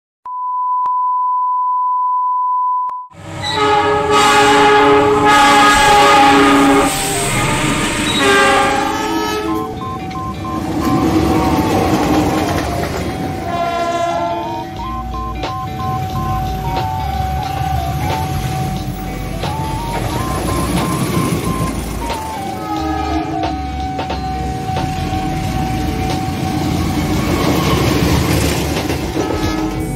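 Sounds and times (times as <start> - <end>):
steady electronic beep tone: 0.3 - 3.1, 8.9 - 13.5, 14.4 - 22.6
locomotive horn blasts: 3.4 - 11.8, 13.2 - 15.0, 22.4 - 24.0, 29.1 - 29.9
tune of electronic tones: 7.0 - 28.8.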